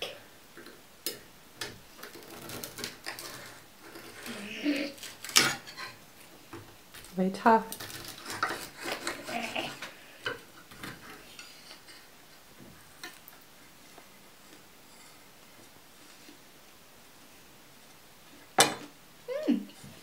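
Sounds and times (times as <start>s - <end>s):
knife and fork scraping a plate: 7.8s - 9.8s.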